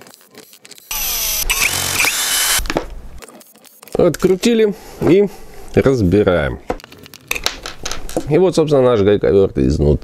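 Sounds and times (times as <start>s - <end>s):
cordless screwdriver motor whine: 0.9s - 2.7s.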